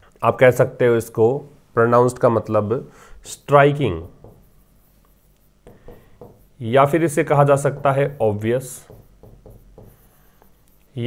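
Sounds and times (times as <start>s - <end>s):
pen strokes on a display board: 3.7s - 11.0s
soft pen taps and scratches: 4.0s - 6.6s, 7.6s - 11.0s.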